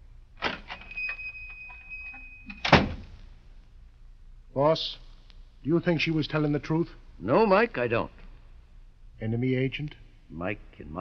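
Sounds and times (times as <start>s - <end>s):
door opening click: 0.4s - 3.1s
door shutting with a bang: 2.5s - 3.1s.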